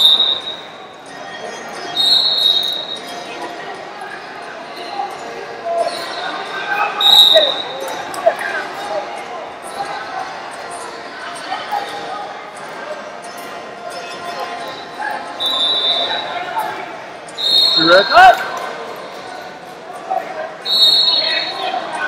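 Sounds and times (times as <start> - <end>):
din of voices in hall: 0.0 - 22.0.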